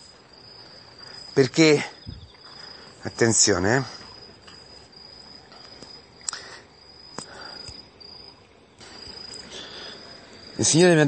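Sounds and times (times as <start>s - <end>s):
high-pitched insect trill: 0.0s - 11.0s.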